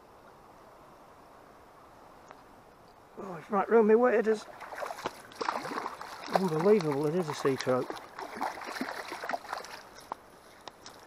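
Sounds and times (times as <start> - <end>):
fish splashing at surface: 4.5 - 10.0.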